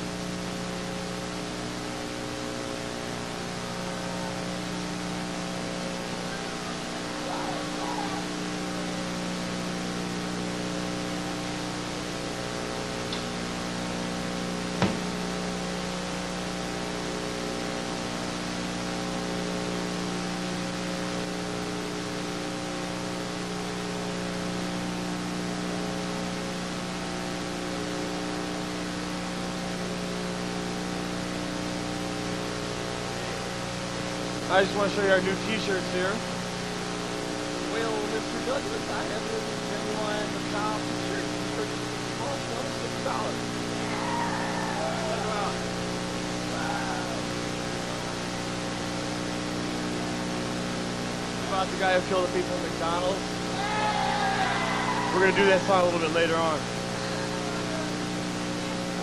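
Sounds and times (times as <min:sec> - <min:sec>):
electrical mains hum: 0:00.0 - 0:59.0
tape hiss: 0:00.0 - 0:59.0
sharp click: 0:13.1 - 0:13.3.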